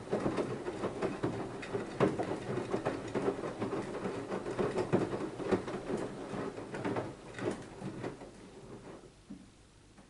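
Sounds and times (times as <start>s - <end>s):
washing machine drum turning: 0.0s - 9.0s
wet laundry tumbling and sloshing: 0.0s - 9.1s.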